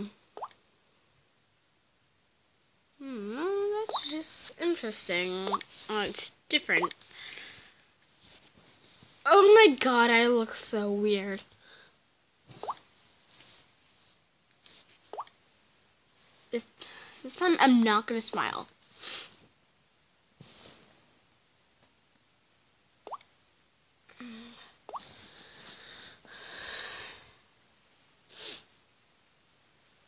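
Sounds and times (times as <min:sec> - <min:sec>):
person saying um: 0:03.0 - 0:04.4.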